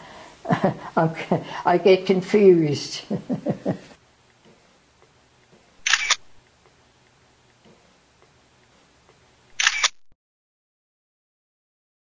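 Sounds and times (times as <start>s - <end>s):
camera shutter clicks: 5.8s - 6.4s, 9.5s - 10.2s.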